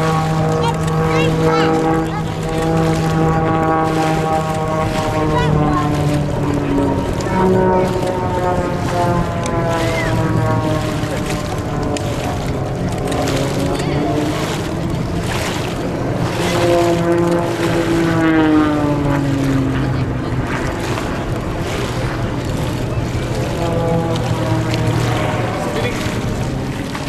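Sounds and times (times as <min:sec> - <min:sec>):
propeller plane engine droning: 0:00.0 - 0:27.0.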